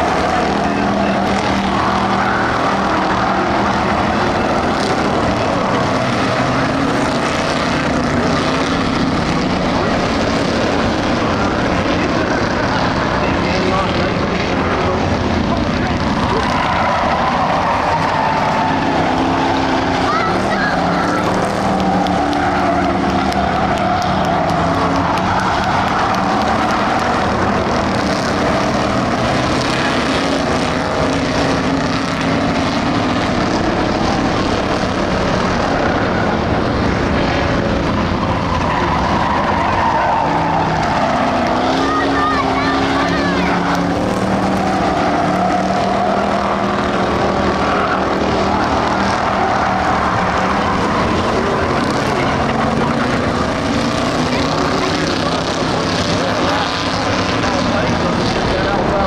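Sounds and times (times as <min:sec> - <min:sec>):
stock car engines racing: 0:00.0 - 0:59.0.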